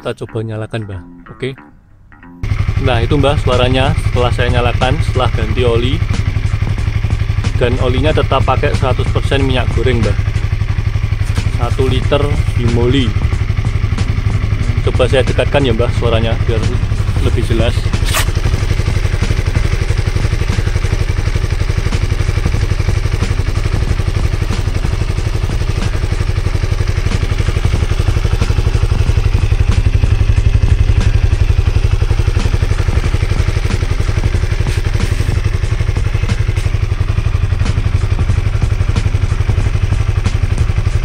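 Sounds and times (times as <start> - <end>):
motorcycle engine idling: 2.4 - 41.0.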